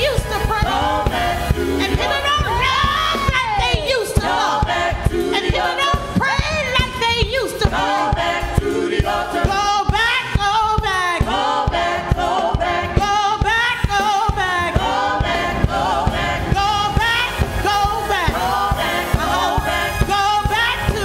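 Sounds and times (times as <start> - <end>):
keyboard: 0.0 - 6.2, 6.8 - 21.0
drums keeping steady beat: 0.0 - 21.0
gospel group singing: 0.0 - 21.0.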